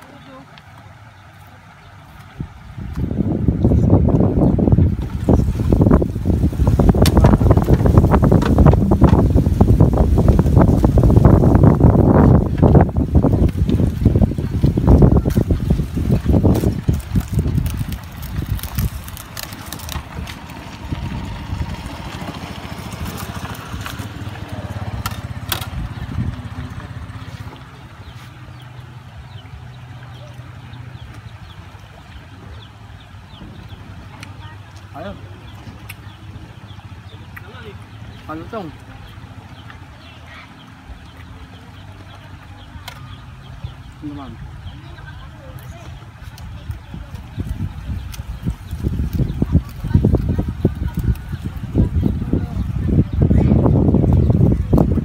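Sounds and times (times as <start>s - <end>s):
wind buffeting microphone: 1.8s - 55.0s.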